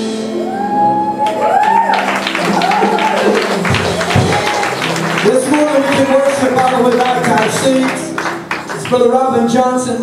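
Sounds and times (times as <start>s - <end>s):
gospel instrumental music: 0.0s - 10.0s
fast sharp claps: 2.0s - 9.1s.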